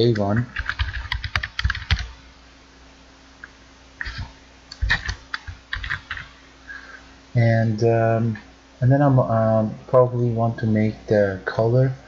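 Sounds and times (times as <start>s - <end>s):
typing on computer keyboard: 0.1s - 2.1s, 4.0s - 6.3s.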